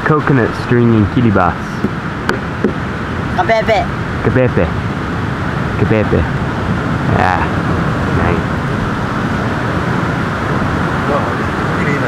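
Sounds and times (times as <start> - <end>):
surf: 0.0 - 12.0
wind: 0.0 - 12.0.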